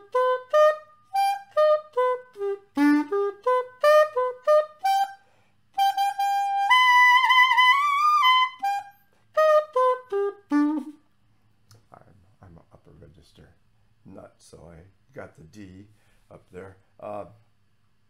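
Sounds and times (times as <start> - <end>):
pocket sax playing notes: 0.0 - 11.1.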